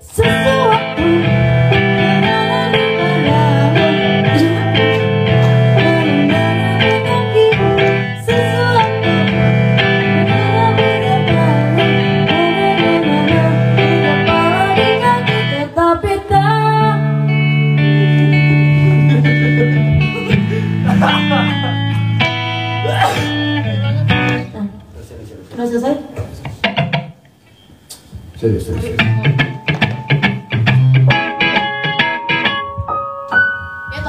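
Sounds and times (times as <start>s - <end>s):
guitar: 0.0s - 34.0s
electronic keyboard: 29.6s - 34.0s.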